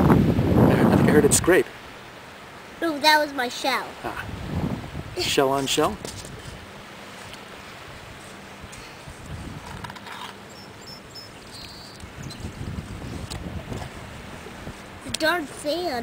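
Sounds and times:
wind buffeting microphone: 0.0s - 1.6s, 4.0s - 6.7s, 7.8s - 16.0s.

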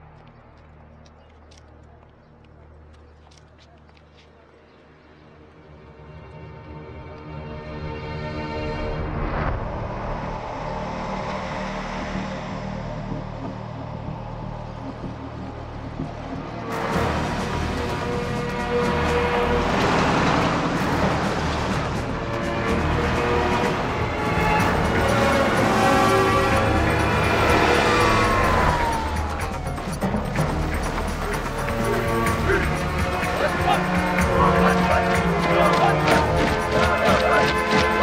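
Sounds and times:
film score music: 4.6s - 38.0s
trucks driving past: 8.7s - 38.0s.

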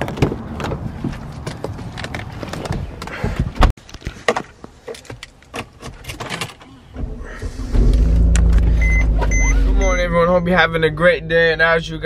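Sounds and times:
car engine idling: 6.7s - 12.0s
warning chime beeping: 8.6s - 11.2s.

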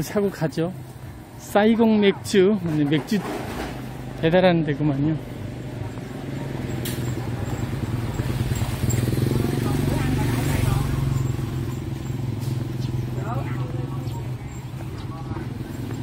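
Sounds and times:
faint voices: 5.2s - 16.0s
motorbike engine running: 5.2s - 16.0s.

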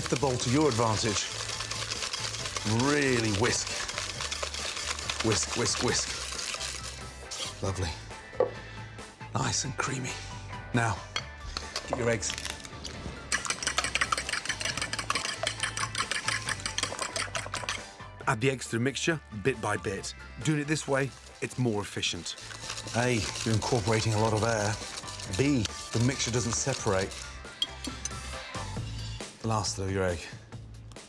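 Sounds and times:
whisk beating against a bowl: 0.0s - 7.5s, 13.3s - 17.8s, 22.1s - 27.3s
background music: 0.0s - 31.0s.

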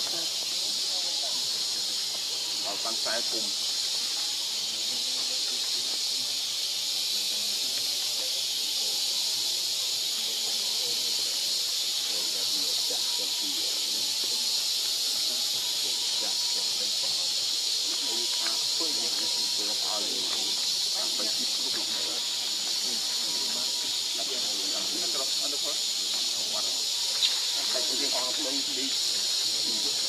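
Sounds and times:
insect chorus drone: 0.0s - 30.0s.

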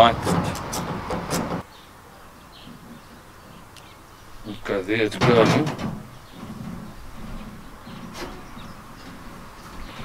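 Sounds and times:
wind gusting on microphone: 0.0s - 1.6s.

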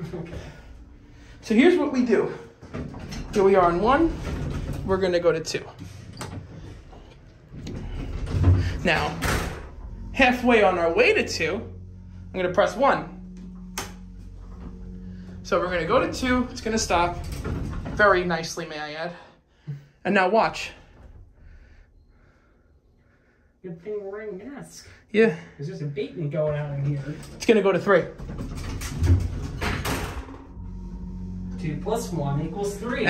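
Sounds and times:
elevator hum: 0.0s - 19.3s, 26.2s - 33.0s
elevator door thud: 7.7s - 18.6s.

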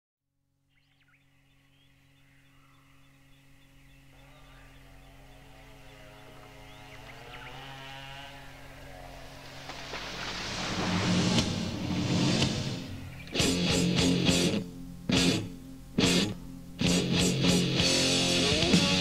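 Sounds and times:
faint bird chirps: 0.6s - 7.8s, 12.8s - 13.6s
noisy swell: 8.2s - 16.9s
steady low drone: 8.2s - 19.0s
wavering pitched sound: 10.1s - 16.8s
metal band playing: 10.1s - 19.0s.

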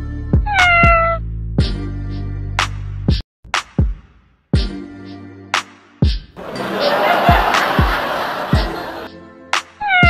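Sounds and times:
cat meowing: 0.5s - 1.2s
music with bass beat: 1.5s - 6.4s.

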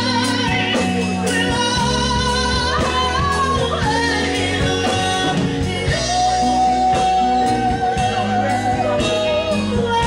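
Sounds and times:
live band playing: 0.0s - 10.0s
person singing with vibrato: 0.0s - 10.0s.

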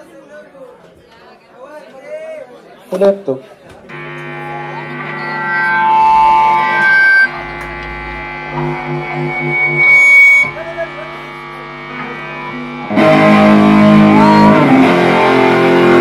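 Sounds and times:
electric guitar droning with feedback: 3.9s - 16.0s.

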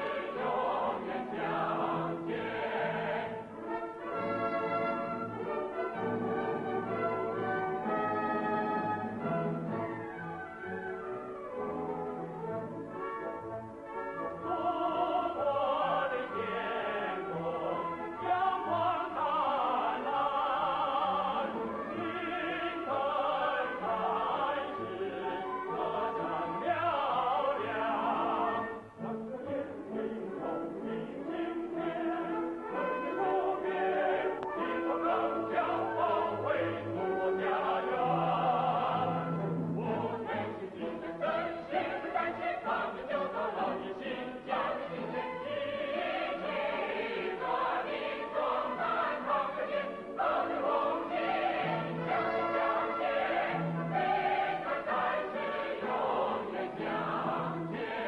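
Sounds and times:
choir singing held notes: 0.0s - 3.6s, 14.4s - 58.0s.

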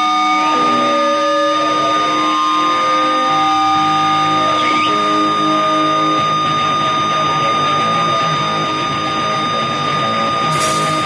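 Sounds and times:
electric guitar feedback: 0.0s - 11.0s.

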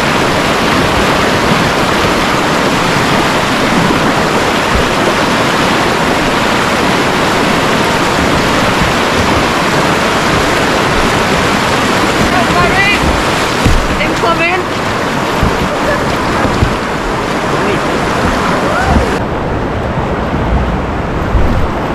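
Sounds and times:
river whitewater rushing: 0.0s - 21.9s.

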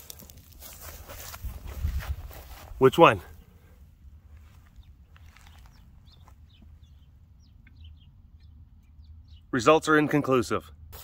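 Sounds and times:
birds chirping: 2.8s - 10.9s.

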